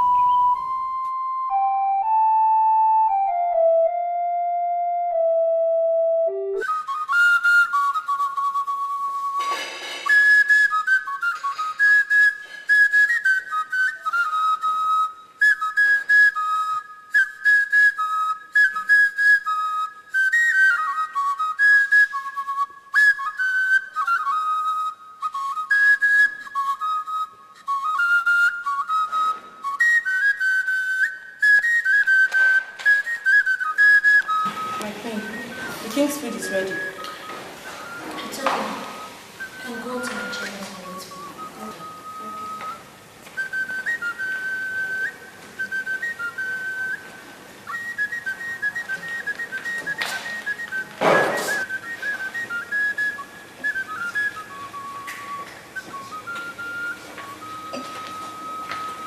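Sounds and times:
held keyboard note: 0:00.0 - 0:06.9, 0:34.4 - 0:42.9
high whistle-like melody: 0:00.0 - 0:59.0.

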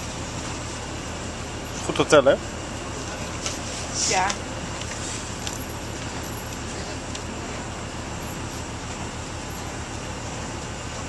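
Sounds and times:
bus engine hum: 0:00.0 - 0:11.0
road noise: 0:00.0 - 0:11.0.

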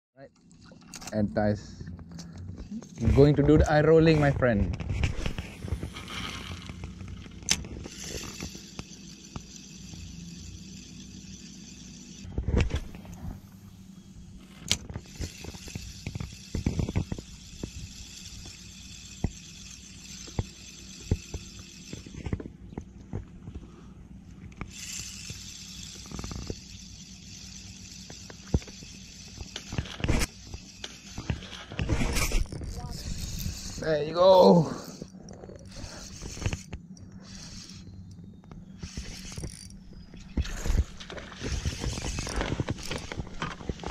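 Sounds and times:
fishing reel cranking: 0:05.2 - 0:12.3, 0:14.5 - 0:22.4, 0:24.5 - 0:43.6.

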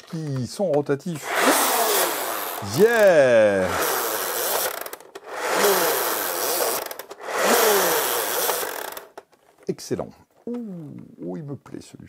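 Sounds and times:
toy blaster whirring rattle: 0:01.2 - 0:09.3.

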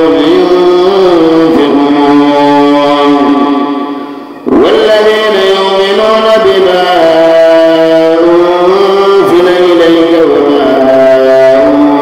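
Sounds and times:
person chanting a long note: 0:00.0 - 0:12.0.

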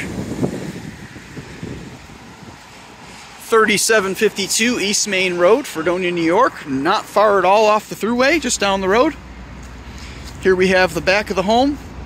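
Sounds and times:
passing road traffic: 0:00.0 - 0:12.0.

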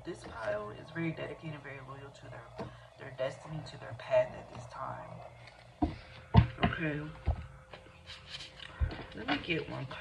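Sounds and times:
dull thumps: 0:05.8 - 0:07.5.

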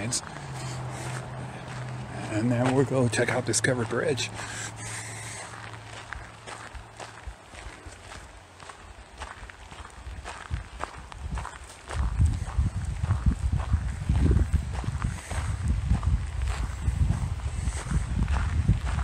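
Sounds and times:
footsteps on dry grass and dirt: 0:00.0 - 0:19.0
low rumble on microphone: 0:09.9 - 0:19.0.

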